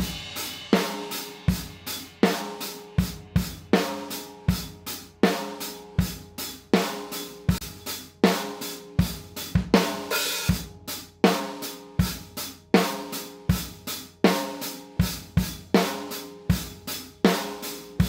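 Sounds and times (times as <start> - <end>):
drum kit beat: 0.0 - 18.0.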